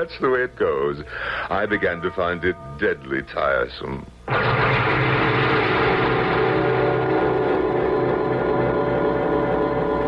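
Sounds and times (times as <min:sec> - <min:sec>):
sustained ringing chord: 0:04.3 - 0:10.0.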